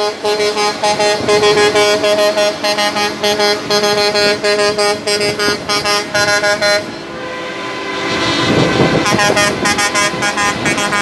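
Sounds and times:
heavy truck driving past: 0.0 - 11.0
vehicle horn short toots: 0.0 - 11.0.

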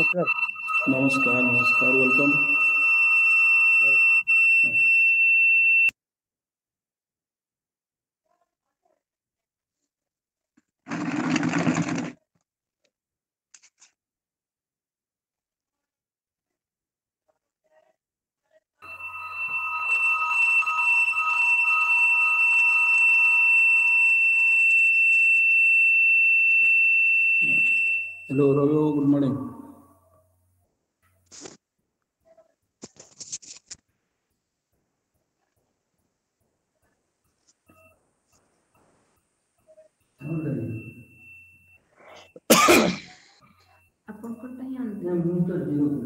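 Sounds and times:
low wavering tones: 0.0 - 5.1
high-pitched electronic tone: 0.0 - 5.9, 18.8 - 29.9, 39.7 - 42.4.

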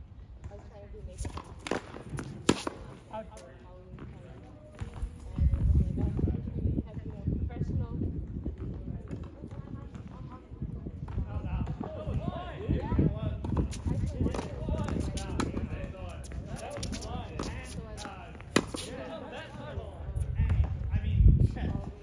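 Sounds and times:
tennis ball bouncing on hard court: 1.2 - 3.1, 13.4 - 19.0
tennis ball struck by rackets: 1.2 - 3.1, 13.4 - 19.1
quick footsteps on court: 13.4 - 19.2.

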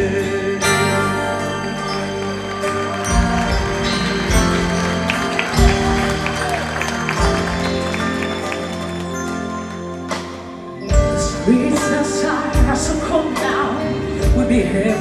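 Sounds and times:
live band playing: 0.0 - 15.0.

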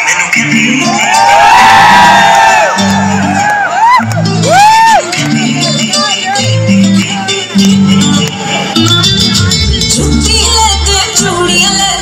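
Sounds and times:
crowd cheering and whooping: 0.0 - 5.6, 8.1 - 9.4
song through loudspeakers: 0.0 - 12.0.

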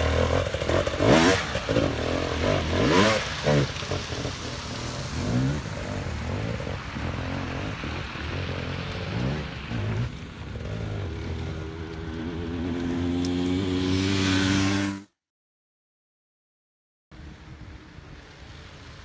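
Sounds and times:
dirt bike engines revving: 0.0 - 15.1.

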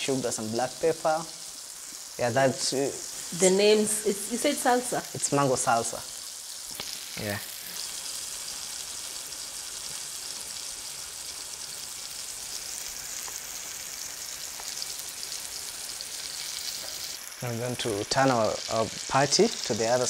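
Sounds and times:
food sizzling in hot oil: 0.0 - 20.0.

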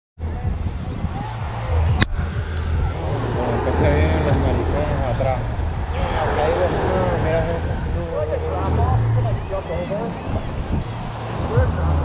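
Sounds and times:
people talking faintly: 0.2 - 12.0
wind rumble on microphone: 0.2 - 12.0.

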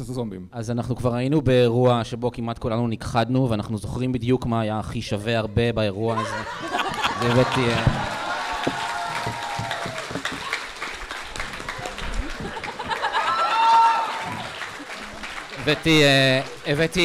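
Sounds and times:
audience applauding: 6.6 - 17.0.

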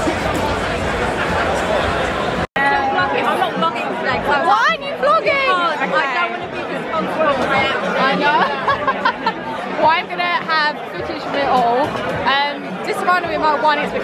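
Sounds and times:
chatter of many people talking: 0.0 - 14.0.

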